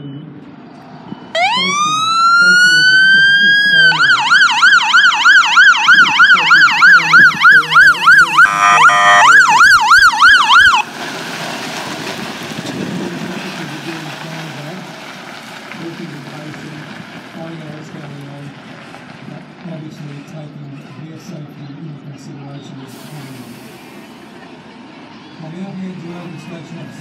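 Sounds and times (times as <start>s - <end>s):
outdoor background noise: 0.0s - 27.0s
fire engine siren wailing and yelping: 1.3s - 10.9s
horn blast: 8.1s - 9.8s.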